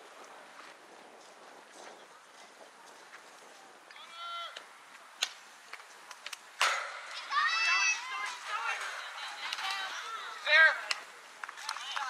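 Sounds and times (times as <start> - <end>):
girl shouting: 7.2 - 8.4.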